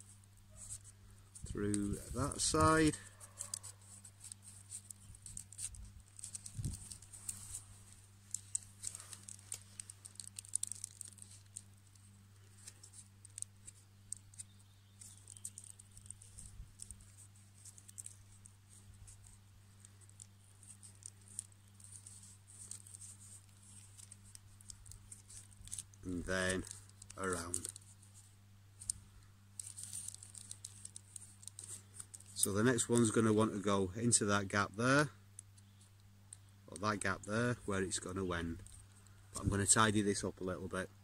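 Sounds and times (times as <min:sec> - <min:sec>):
birch bark crackling and rustling: 0:00.0 - 0:41.0
steady low hum: 0:00.0 - 0:41.0.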